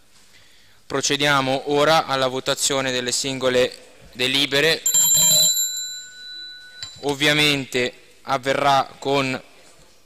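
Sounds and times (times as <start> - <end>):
hand bell ringing: 4.8 - 7.6.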